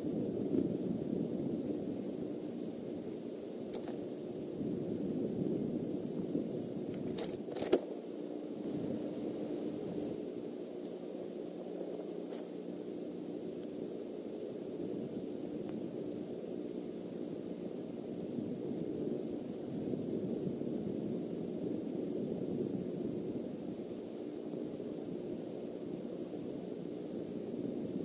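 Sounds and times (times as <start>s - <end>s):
low hum and rumble: 0.0s - 28.0s
sharp scratchy cracks: 3.1s - 4.1s, 6.9s - 8.0s.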